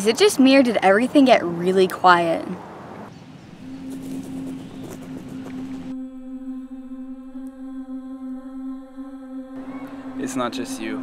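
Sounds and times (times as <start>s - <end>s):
background hiss: 2.8s - 11.0s
low drone note: 3.3s - 11.0s.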